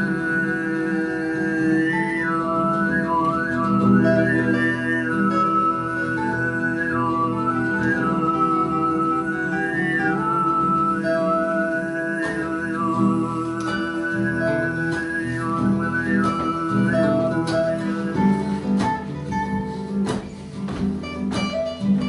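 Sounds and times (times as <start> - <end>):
overtone throat singing: 0.0 - 20.0
acoustic guitars: 0.0 - 22.0.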